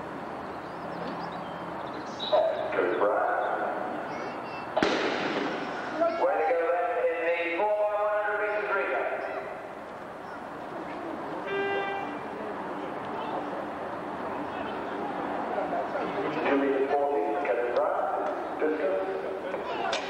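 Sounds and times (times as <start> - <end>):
starting pistol shot: 4.8 - 5.9.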